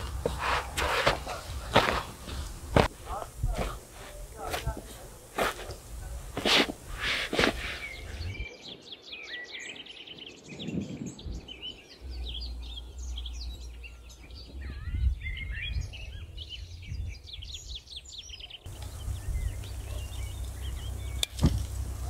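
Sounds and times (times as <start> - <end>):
songbirds chirping: 0.0 - 22.0
steady low rumble: 11.3 - 17.2, 18.7 - 22.0.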